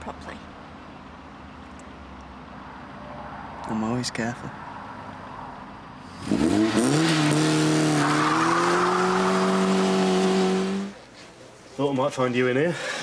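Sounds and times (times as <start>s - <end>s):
car engine revving: 6.0s - 11.0s.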